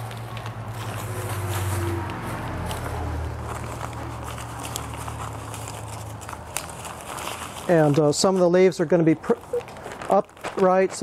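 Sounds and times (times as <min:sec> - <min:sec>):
rustling leaves and newspaper: 0:00.0 - 0:11.0.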